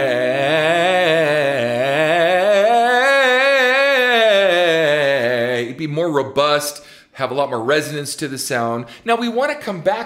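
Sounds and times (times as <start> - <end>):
man singing opera scale: 0.0 - 6.8.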